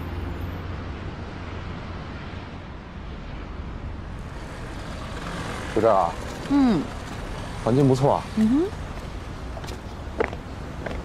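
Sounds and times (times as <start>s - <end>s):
city traffic rumble: 0.0s - 11.0s
person speaking: 8.4s - 8.7s.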